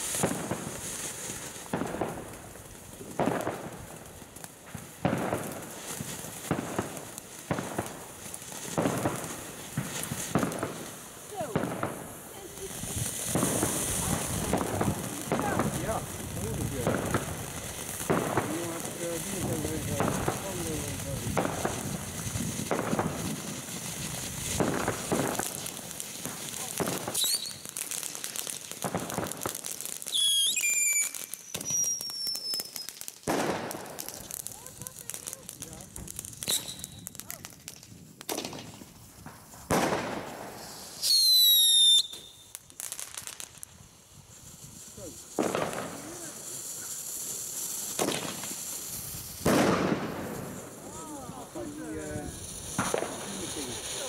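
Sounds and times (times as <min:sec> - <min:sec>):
fireworks crackling hiss: 0:00.0 - 0:54.0
falling high whistles: 0:27.2 - 0:27.7, 0:30.1 - 0:33.0, 0:36.4 - 0:37.1, 0:40.7 - 0:42.6.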